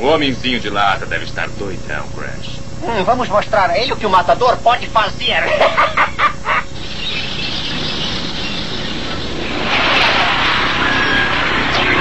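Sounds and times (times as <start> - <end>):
cartoon villain cackling laugh: 5.4 - 6.8
steady rushing noise: 6.8 - 12.0.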